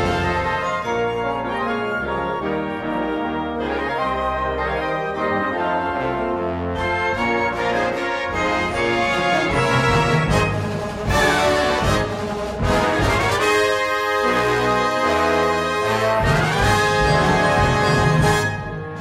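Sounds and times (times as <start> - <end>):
concert band brass fanfare: 0.0 - 2.7, 5.9 - 19.0.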